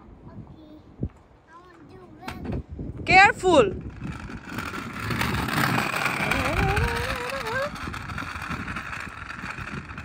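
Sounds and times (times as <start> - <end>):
scooter wheels rolling on concrete: 1.1 - 10.0.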